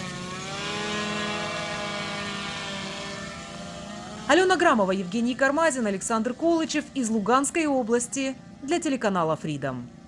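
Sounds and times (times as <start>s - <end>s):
drone propellers buzzing: 0.0s - 8.6s.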